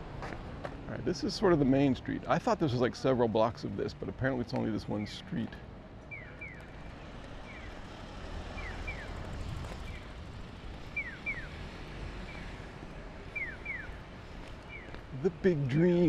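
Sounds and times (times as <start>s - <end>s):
street traffic rumble: 0.0s - 16.0s
crossing signal chirping: 8.5s - 9.2s, 10.9s - 11.6s, 13.3s - 14.0s.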